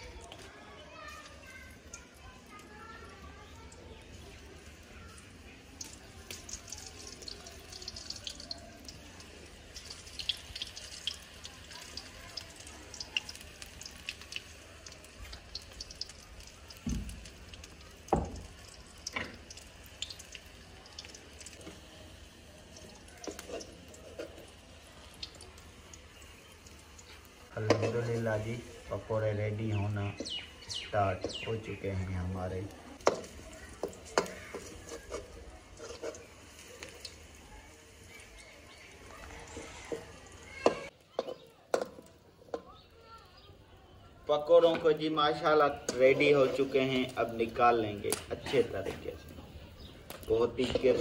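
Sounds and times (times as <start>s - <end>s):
batter frying in hot oil: 0.0s - 43.6s, 44.2s - 51.0s.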